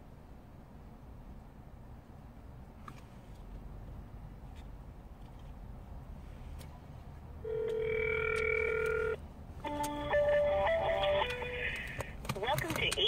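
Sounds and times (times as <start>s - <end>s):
telephone ringback tone: 7.4s - 11.7s.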